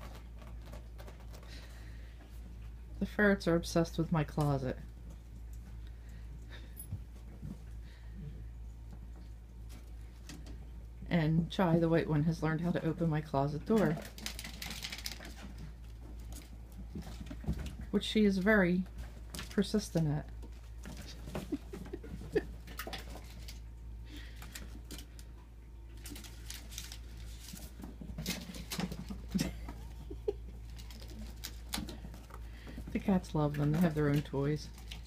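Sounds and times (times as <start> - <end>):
ferrets scrabbling in plastic tube: 0.0 - 1.7, 13.7 - 23.7, 25.9 - 35.0
steady low hum: 0.0 - 35.0.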